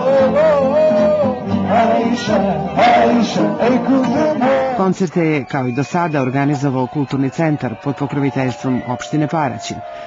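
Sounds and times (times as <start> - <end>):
strummed and plucked strings: 0.0 - 4.8
man singing: 0.0 - 5.1
bass line: 0.0 - 5.2.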